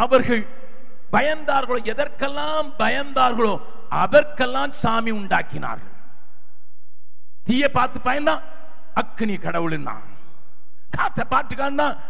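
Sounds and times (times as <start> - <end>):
man preaching into microphone: 0.0 - 6.2, 7.4 - 12.0.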